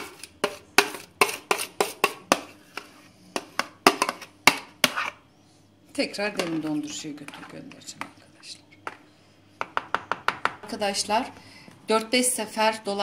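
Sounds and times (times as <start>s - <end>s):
spoon scraping plastic tub: 0.0s - 5.2s, 6.3s - 8.2s.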